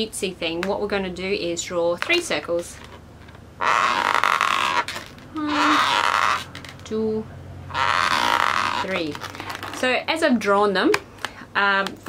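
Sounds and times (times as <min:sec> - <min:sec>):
marker pen scraping on balloon: 0:03.6 - 0:06.8, 0:07.7 - 0:09.9.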